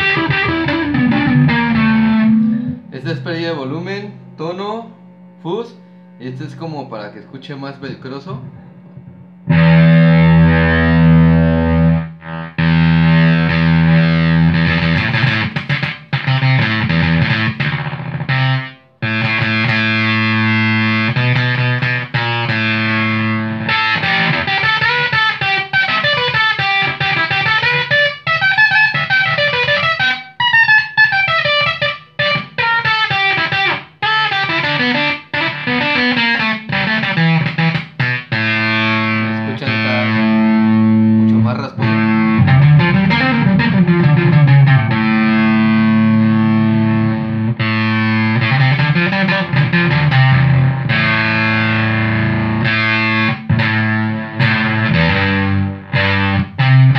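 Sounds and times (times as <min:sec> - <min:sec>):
fuzz electric guitar: 0:00.0 - 0:56.9.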